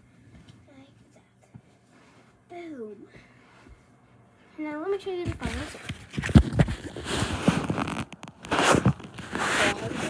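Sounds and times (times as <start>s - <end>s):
fabric and fingers rubbing microphone: 5.5s - 10.0s.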